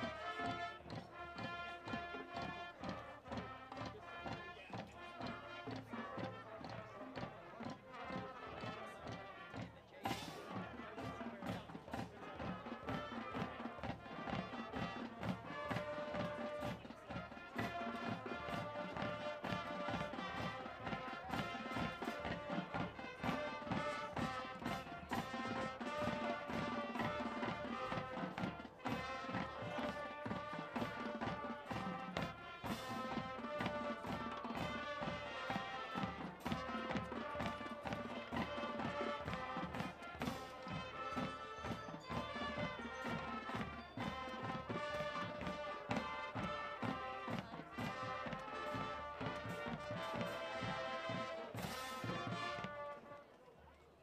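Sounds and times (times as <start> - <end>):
marching drum beat: 0.0 - 52.9
brass and sousaphone: 0.0 - 53.4.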